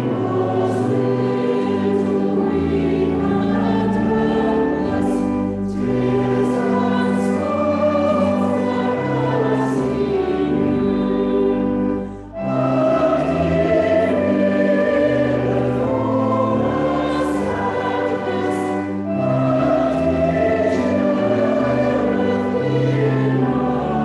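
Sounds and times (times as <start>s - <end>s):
church choir singing a carol: 0.0s - 24.0s.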